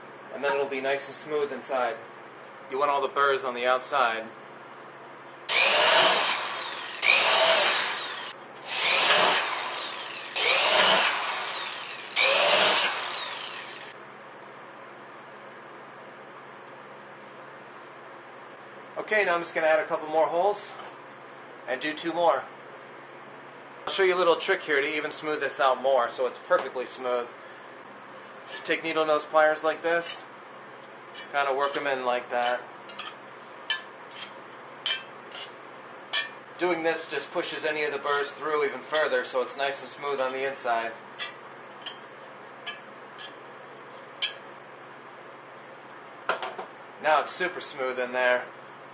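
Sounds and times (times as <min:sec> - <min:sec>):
electric drill boring through steel: 0:05.5 - 0:14.0.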